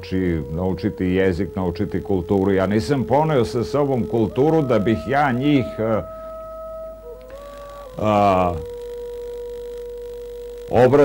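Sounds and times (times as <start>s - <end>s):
soft music of long held notes: 0.0s - 11.0s.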